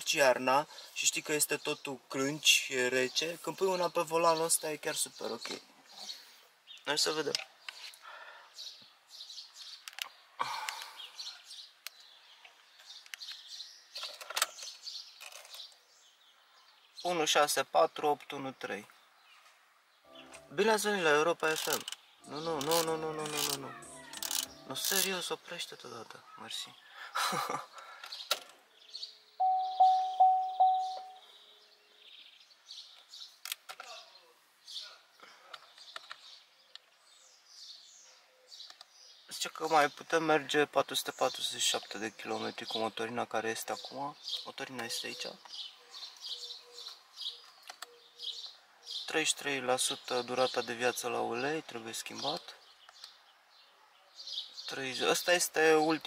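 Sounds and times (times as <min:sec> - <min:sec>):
faint bird chirps: 0:28.2 - 0:33.1
car warning chime: 0:29.4 - 0:31.2.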